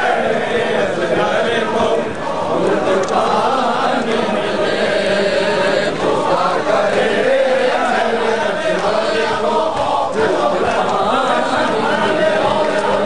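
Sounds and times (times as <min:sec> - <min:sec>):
men chanting a lament: 0:00.0 - 0:13.0.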